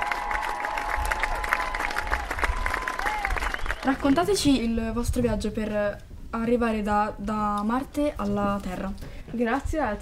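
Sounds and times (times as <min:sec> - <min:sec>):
applause: 0:00.0 - 0:04.4.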